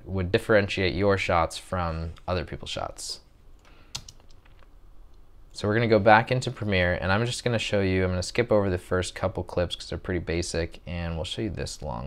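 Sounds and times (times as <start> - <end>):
computer keyboard clicking: 3.9 - 4.6.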